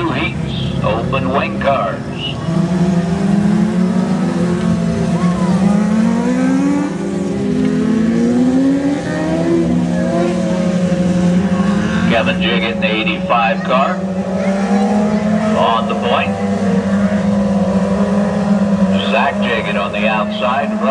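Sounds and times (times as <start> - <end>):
engines revving: 0.0 - 20.9
racing car engines droning: 0.0 - 20.9.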